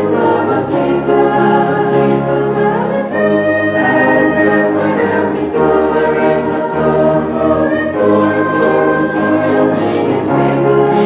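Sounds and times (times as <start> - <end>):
youth choir singing: 0.0 - 11.0.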